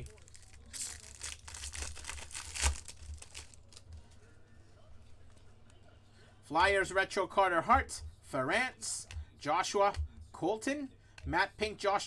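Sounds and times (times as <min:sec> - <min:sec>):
foil pack crinkling and tearing: 0:00.0 - 0:03.9
cards rustling: 0:00.0 - 0:04.2.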